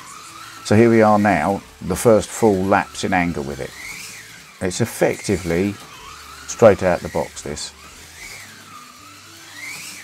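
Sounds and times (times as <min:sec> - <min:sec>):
slot car motor whining: 0:00.0 - 0:10.0.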